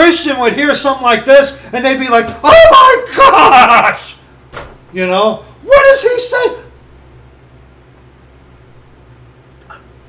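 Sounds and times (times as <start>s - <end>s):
man speaking: 0.0s - 4.2s, 4.9s - 6.8s
steady low hum: 0.0s - 10.0s.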